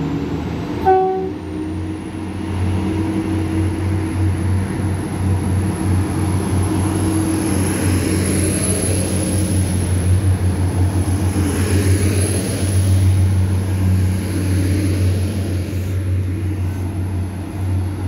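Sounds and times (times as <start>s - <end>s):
diesel train passing: 0.0s - 18.0s.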